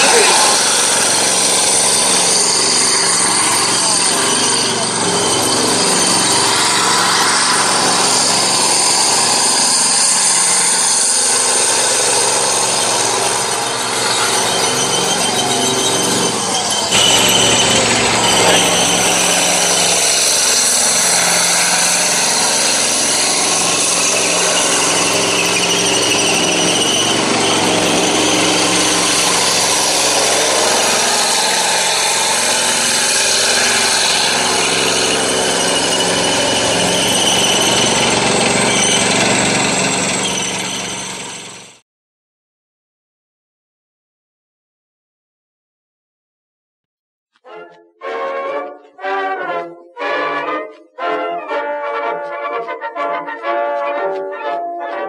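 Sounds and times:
diesel engine drone: 0.0 - 41.8
tank tracks squealing and clattering: 0.0 - 41.8.

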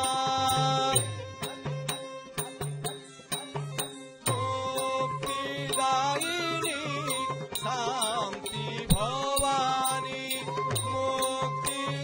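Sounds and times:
person singing ornamented melody: 0.0 - 1.2, 4.3 - 12.0
sharp rhythmic ticks: 0.0 - 12.0
steady drum beat: 0.0 - 12.0.

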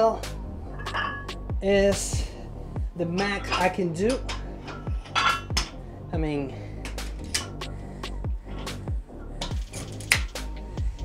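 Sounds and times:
background music with deep bass: 0.0 - 11.0
metal weight plates clinking: 0.8 - 1.4, 3.2 - 5.8.

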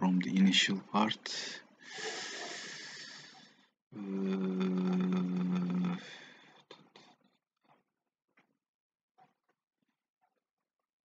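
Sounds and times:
man exhaling: 1.9 - 3.4
man saying uh: 4.0 - 6.2.

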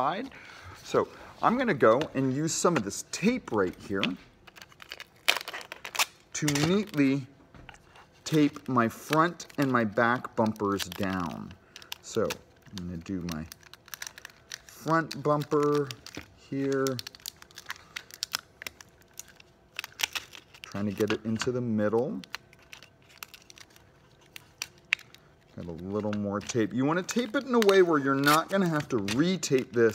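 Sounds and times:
tape crinkling and clicks: 1.4 - 29.9
sticky tape ripping: 2.6 - 7.1, 8.3 - 29.9.

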